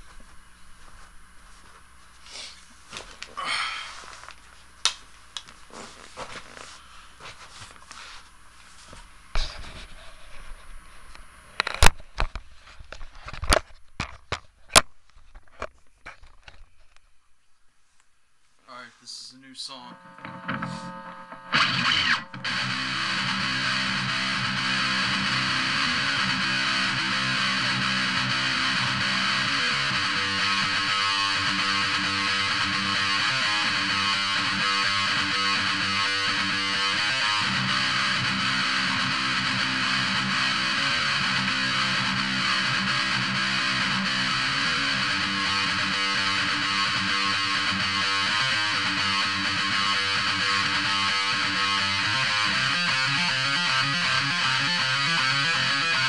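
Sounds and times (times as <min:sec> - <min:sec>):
electric guitar lead: 0:19.8 - 0:56.0.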